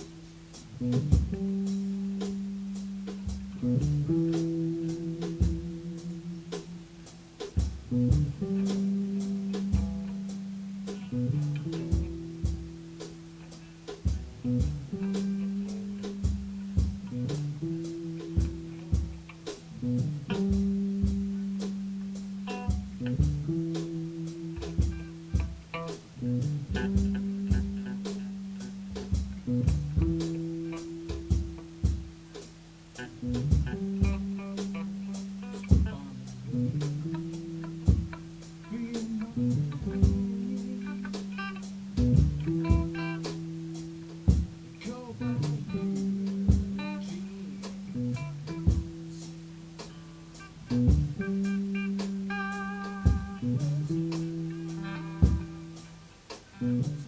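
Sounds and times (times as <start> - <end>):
drum hits: 0.0 - 32.6, 33.2 - 40.4, 41.2 - 46.9, 47.6 - 50.0, 53.0 - 56.5
guitar and bass riff: 0.0 - 57.0.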